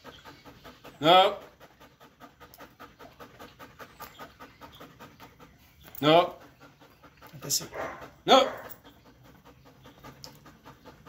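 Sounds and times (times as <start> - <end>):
dog panting quickly: 0.0 - 11.0.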